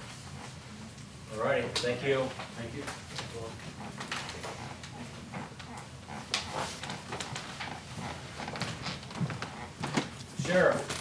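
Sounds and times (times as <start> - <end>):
people shifting at table: 6.4 - 11.0
papers rustling: 8.4 - 11.0.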